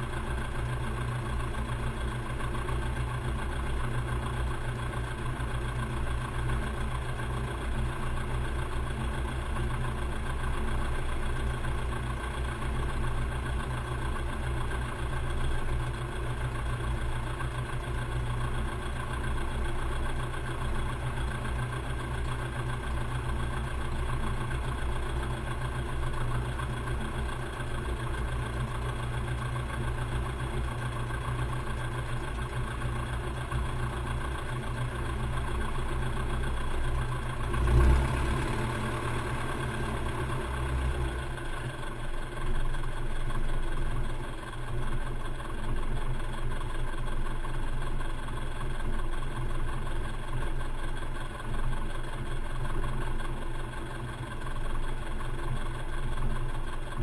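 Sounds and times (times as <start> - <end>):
propeller engine idling: 0.0 - 57.0.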